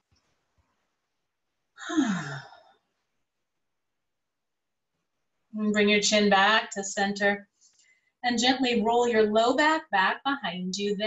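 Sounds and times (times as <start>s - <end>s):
woman sighing: 1.8s - 2.6s.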